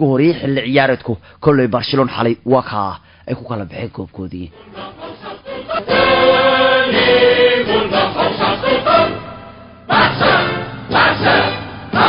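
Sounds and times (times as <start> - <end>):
choir singing with music: 4.5 - 12.0.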